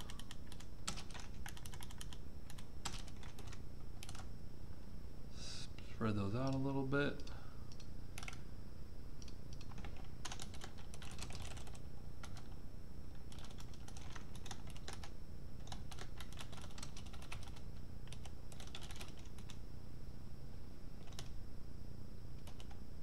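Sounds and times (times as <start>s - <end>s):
typing on computer keyboard: 0.0s - 4.3s, 6.4s - 8.4s, 9.2s - 12.6s, 13.2s - 19.6s, 21.0s - 21.3s, 22.4s - 22.8s.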